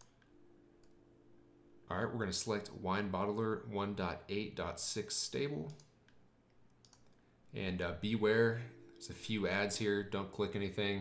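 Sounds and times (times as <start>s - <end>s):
faint low hum: 0.0s - 11.0s
computer mouse clicking: 5.7s - 7.2s.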